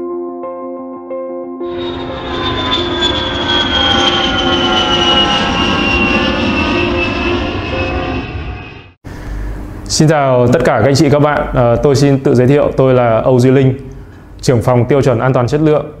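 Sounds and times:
ambient music: 0.0s - 8.4s
jet engines whining past: 1.7s - 9.8s.

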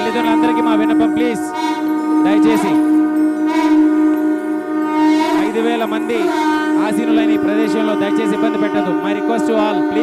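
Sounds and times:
conch shells blown: 0.0s - 10.0s
music track: 0.0s - 10.0s.

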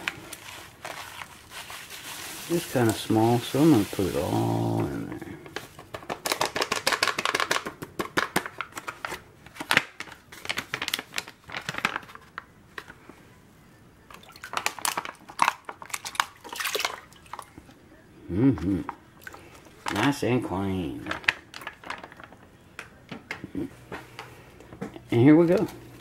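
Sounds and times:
plastic bag crinkling: 0.0s - 13.0s, 14.1s - 17.6s, 19.2s - 20.2s, 20.9s - 22.9s
hands scrubbing gravel in strainer: 0.3s - 4.8s
water splashing: 16.4s - 17.6s.

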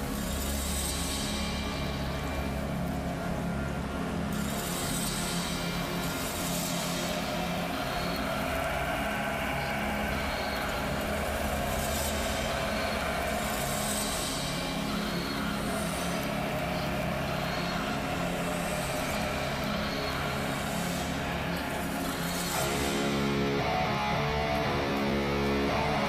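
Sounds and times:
distorted metal guitar chords: 22.6s - 26.0s.

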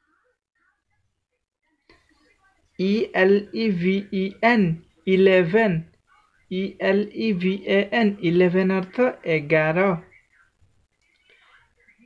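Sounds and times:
faint breathy whisper: 10.3s - 12.0s.

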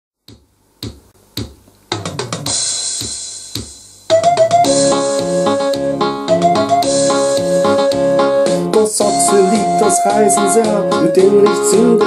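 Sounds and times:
percussion count-in beats: 0.2s - 8.1s.

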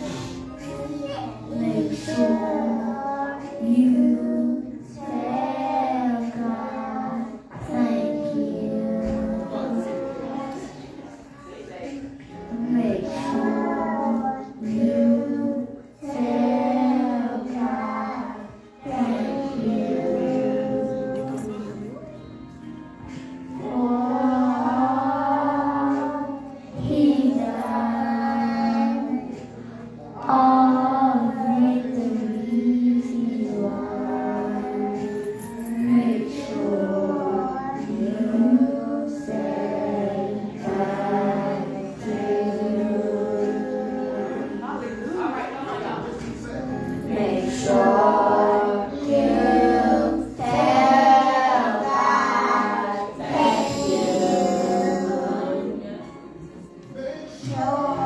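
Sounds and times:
children singing: 0.0s - 58.0s
woman singing: 12.3s - 22.0s, 52.2s - 56.2s.

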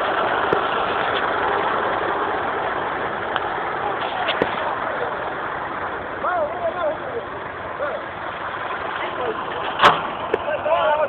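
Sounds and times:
tractor diesel engine running: 0.0s - 11.0s
voices: 0.5s - 11.0s.

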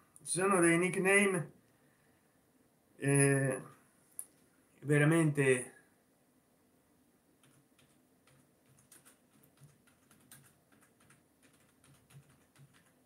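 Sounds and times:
typing on computer keyboard: 7.4s - 13.0s.

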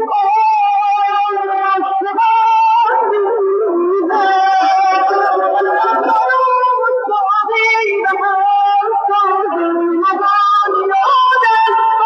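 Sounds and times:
high voice singing: 0.0s - 12.0s.

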